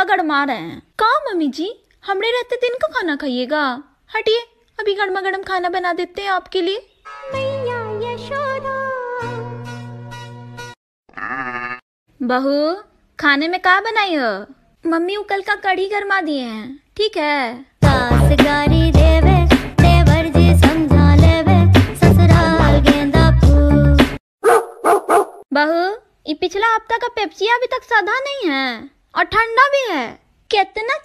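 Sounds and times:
sheep bleat: 0:11.1 - 0:11.8
dog barking: 0:24.4 - 0:25.4.

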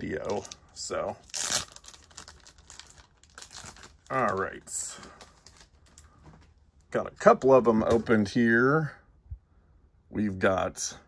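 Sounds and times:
packaging crinkling and rustling: 0:00.0 - 0:06.6.

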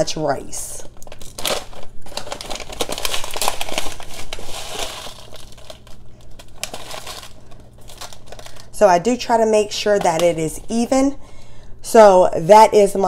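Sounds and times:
scooping rice from plastic pouch: 0:01.2 - 0:08.7.

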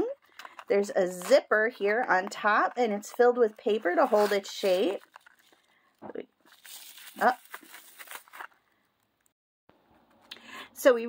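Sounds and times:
tissue paper crinkling: 0:03.1 - 0:05.8, 0:06.4 - 0:08.7.

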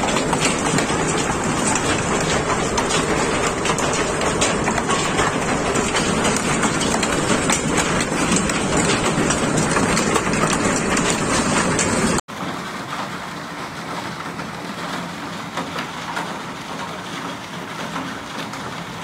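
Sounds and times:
hail clattering: 0:00.0 - 0:19.0
hail pattering on wooden deck: 0:00.0 - 0:19.0.

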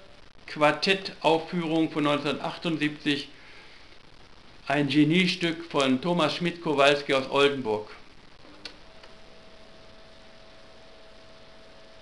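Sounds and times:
faint hum over hiss: 0:00.0 - 0:12.0.

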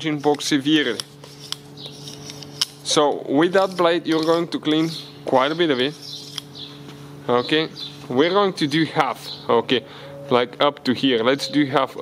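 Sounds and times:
blade scraping metal: 0:00.0 - 0:06.5.

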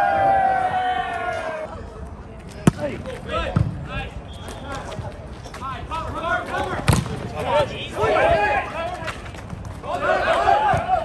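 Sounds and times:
players calling: 0:02.6 - 0:11.0.

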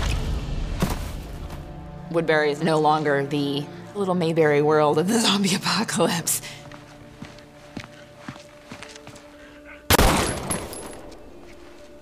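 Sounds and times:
pistol shot with echo: 0:09.9 - 0:11.0.

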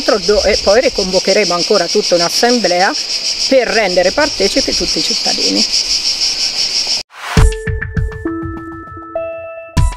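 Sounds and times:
crickets chirping: 0:00.0 - 0:07.0.

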